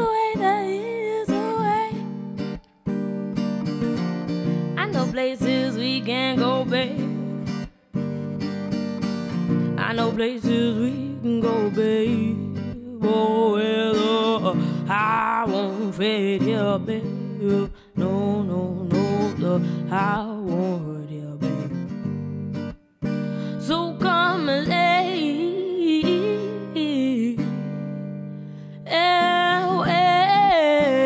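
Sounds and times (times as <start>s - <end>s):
woman singing: 0.0s - 2.7s, 4.7s - 7.7s, 9.5s - 22.3s, 23.0s - 31.0s
acoustic guitar: 0.0s - 31.0s.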